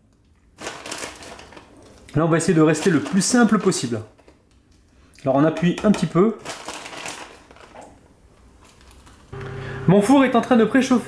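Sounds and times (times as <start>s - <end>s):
plastic packet rustling: 0.5s - 9.3s.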